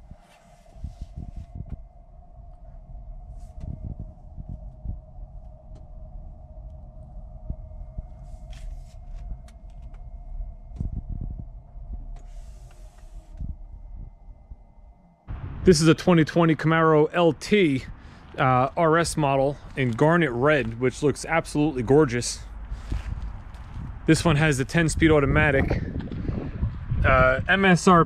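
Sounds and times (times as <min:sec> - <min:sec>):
dull low thumps: 0:00.0 - 0:27.5
steady mid-pitched hum: 0:00.0 - 0:28.0
tyre and road rumble: 0:17.5 - 0:27.4.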